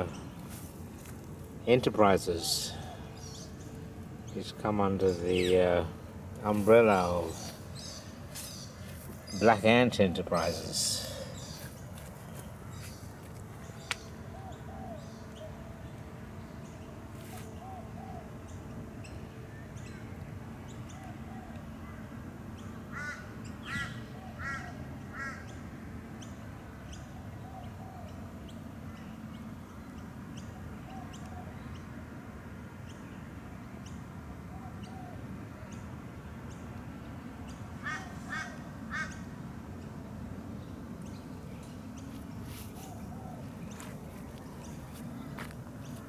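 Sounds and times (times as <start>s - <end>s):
soft low bird calls: 0.0s - 32.0s, 32.8s - 46.0s
low background hiss: 0.0s - 46.0s
harsh bird calls: 1.6s - 16.0s, 19.8s - 29.5s, 37.4s - 39.9s, 40.6s - 46.0s.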